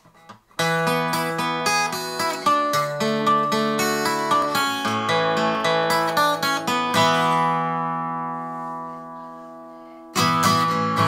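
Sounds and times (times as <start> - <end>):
acoustic guitar chord ringing: 0.6 - 11.0.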